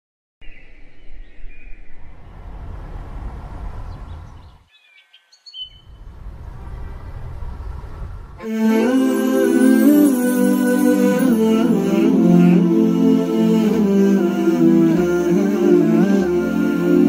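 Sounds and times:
birds chirping: 0.4s - 2.5s, 3.2s - 8.1s
low rushing noise: 1.8s - 4.6s, 5.8s - 8.4s.

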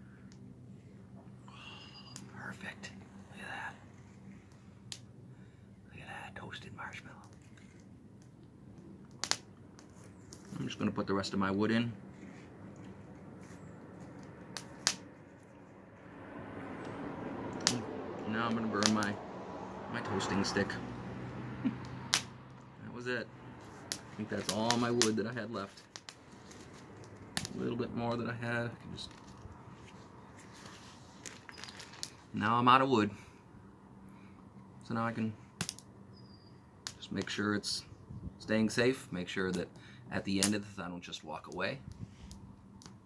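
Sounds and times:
twig fire crackling: 2.2s - 33.3s, 34.8s - 35.9s, 36.8s - 37.8s, 38.6s - 43.0s
sharp wooden snaps: 7.2s - 10.5s, 14.1s - 15.1s, 17.5s - 17.9s, 18.5s - 19.1s, 21.8s - 22.7s, 23.8s - 25.2s, 35.6s - 35.9s.

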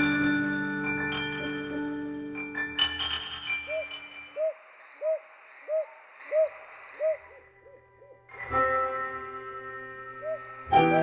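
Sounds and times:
bird hooting: 3.7s - 8.2s.

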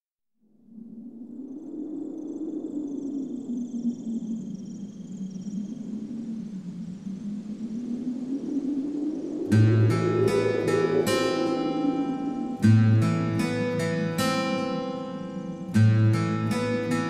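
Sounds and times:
low rumbling drone: 9.0s - 17.0s
high twinkling tones: 9.2s - 17.0s.

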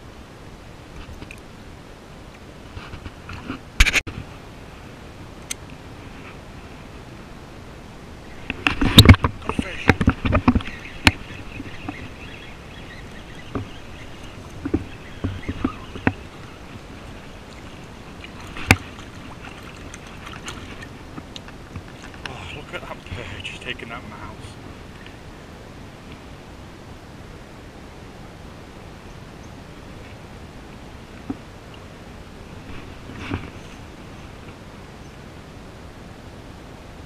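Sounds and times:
river water splashing: 0.2s - 36.1s.

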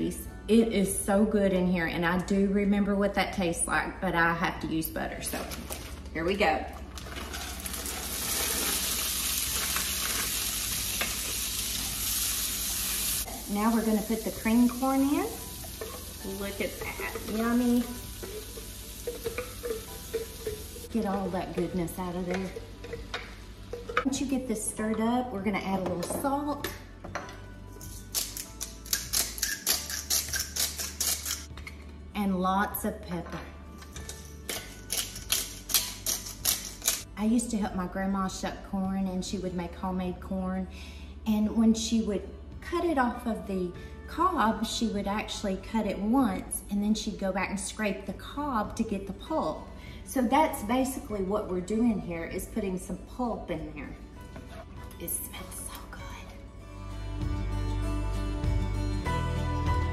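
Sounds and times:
corn sizzling in butter: 6.9s - 21.0s
pepper mill grinding: 7.0s - 24.0s, 27.8s - 31.5s, 34.0s - 37.0s.

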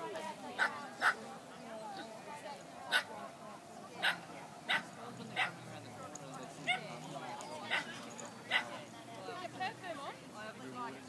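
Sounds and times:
dog barking: 4.0s - 5.6s, 8.5s - 8.7s.

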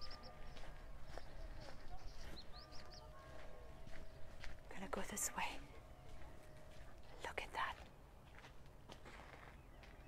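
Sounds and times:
person whispering: 7.2s - 7.8s.

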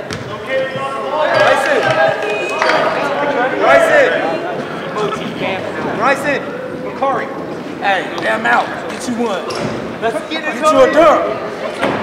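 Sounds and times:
crowd talking and calling out: 0.0s - 12.0s.

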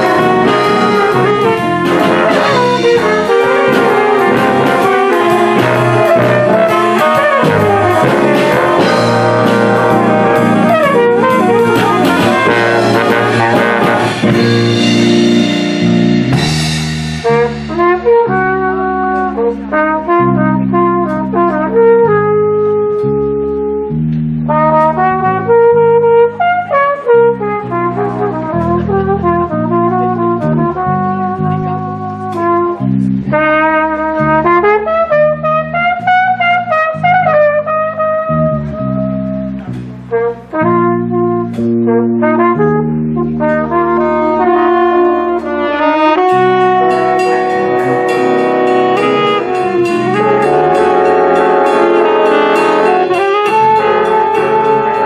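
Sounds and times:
cymbals: 0.0s - 22.0s, 43.4s - 55.0s
jazz big band playing: 0.0s - 55.0s
walking bass: 0.0s - 55.0s.

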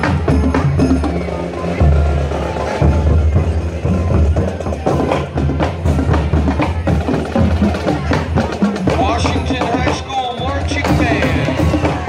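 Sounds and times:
bass drums: 0.0s - 12.0s
snare drums: 0.0s - 12.0s.

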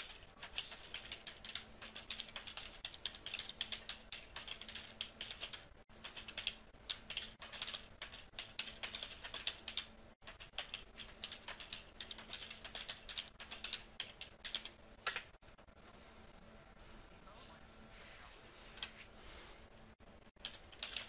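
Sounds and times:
fast typing on keyboard: 0.0s - 15.3s, 20.4s - 21.0s.

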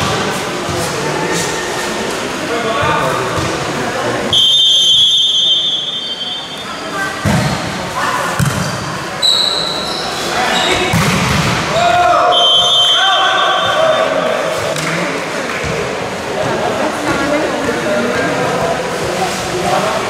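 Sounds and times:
volleyball hits echoing in hall: 0.0s - 1.6s, 2.6s - 6.5s, 7.1s - 19.7s
referee's whistle: 4.3s - 7.0s, 9.2s - 10.9s, 12.3s - 14.3s
players shouting: 11.6s - 14.6s.

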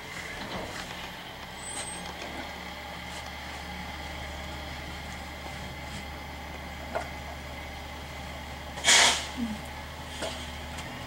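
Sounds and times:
loud hissing burst: 8.8s - 9.4s.

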